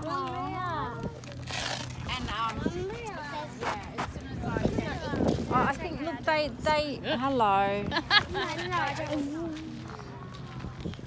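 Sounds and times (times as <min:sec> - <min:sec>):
steady low hum: 0:00.0 - 0:11.0
people talking: 0:02.1 - 0:11.0.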